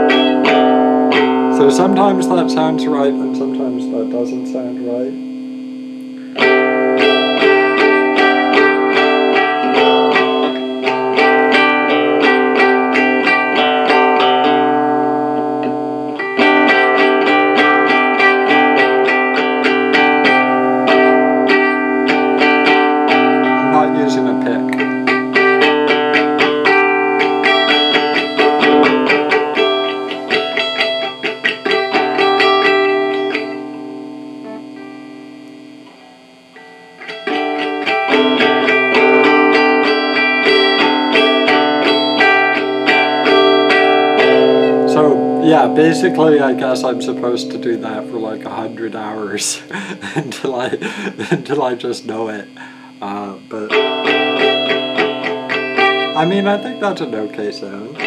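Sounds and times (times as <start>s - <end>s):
electric guitar strumming chords: 0.0s - 58.0s.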